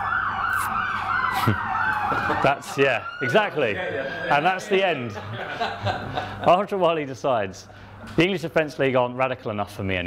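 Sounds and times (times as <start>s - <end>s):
emergency siren yelping: 0.0s - 5.2s.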